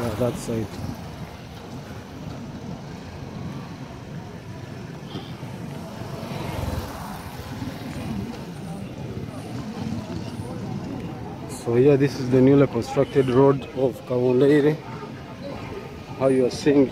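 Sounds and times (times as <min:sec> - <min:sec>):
passing traffic rumble: 0:00.0 - 0:16.9.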